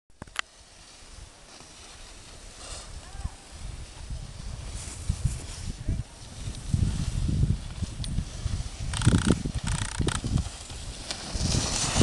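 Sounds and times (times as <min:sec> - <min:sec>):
skis scraping on hard snow: 0:00.3 - 0:12.0
wind buffeting microphone: 0:02.8 - 0:12.0.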